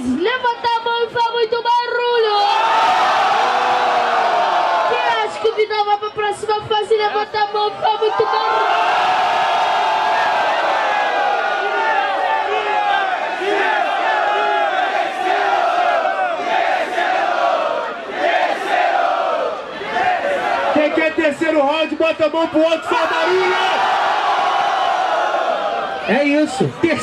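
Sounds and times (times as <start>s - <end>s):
crowd shouting and cheering: 0.0s - 27.0s.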